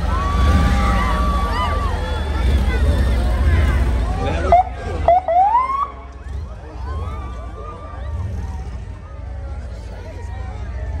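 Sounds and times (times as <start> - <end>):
police siren chirps and whoop: 0.0 - 2.5.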